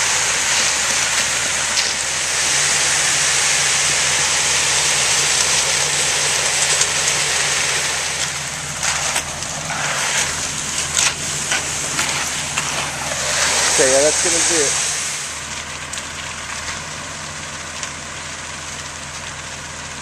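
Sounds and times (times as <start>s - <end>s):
wet concrete sliding down chute: 0.0s - 18.2s
truck engine hum: 0.0s - 20.0s.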